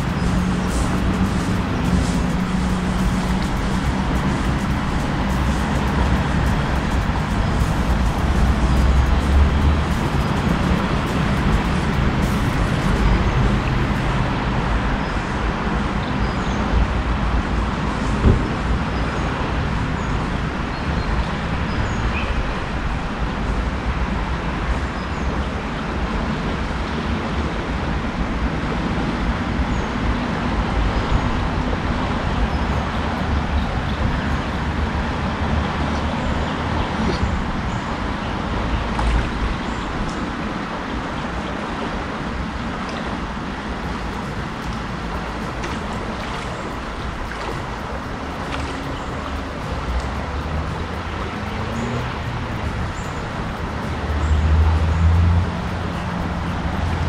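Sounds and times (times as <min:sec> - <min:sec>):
low rumble: 0:00.0 - 0:15.7
river water rushing: 0:00.0 - 0:57.0.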